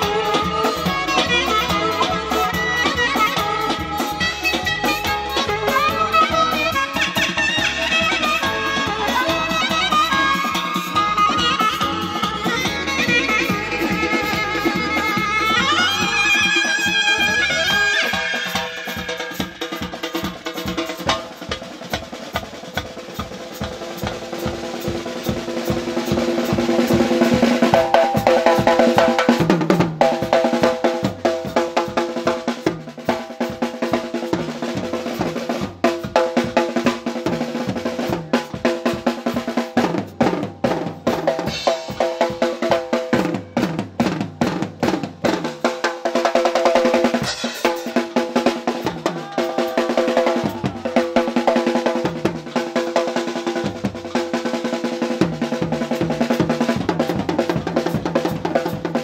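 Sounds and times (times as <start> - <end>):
held sliding melody line: 0.0 - 19.7
drum kit played fast: 0.0 - 59.0.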